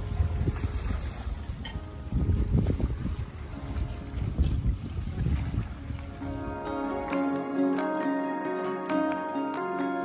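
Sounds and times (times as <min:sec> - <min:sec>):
wind buffeting microphone: 0:00.0 - 0:07.1
boat wash on water: 0:00.0 - 0:08.1.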